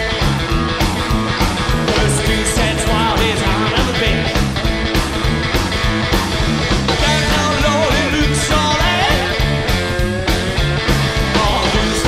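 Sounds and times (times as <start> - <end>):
drums at a fast beat: 0.0 - 12.0
hollow-body electric guitar: 0.0 - 12.0
upright double bass: 0.0 - 12.0.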